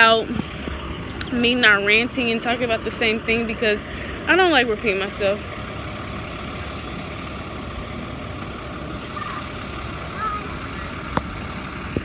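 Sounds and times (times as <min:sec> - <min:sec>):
steady outdoor rumble: 0:00.0 - 0:12.0.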